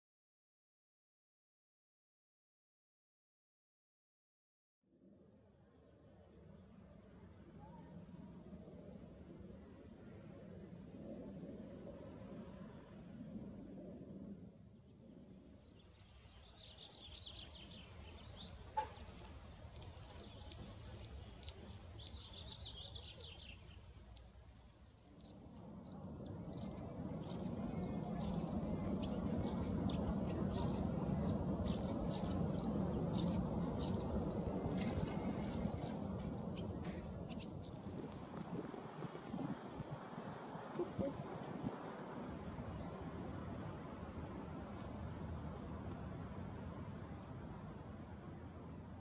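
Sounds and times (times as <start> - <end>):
steady low background noise: 5.0 - 49.0
birds chirping: 15.7 - 38.7
sharp ticks: 17.8 - 22.2.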